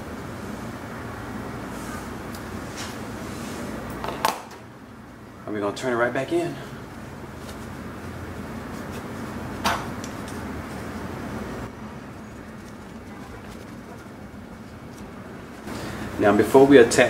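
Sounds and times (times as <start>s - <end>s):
low hum: 6.7s - 16.0s
fabric rustling: 7.2s - 15.7s.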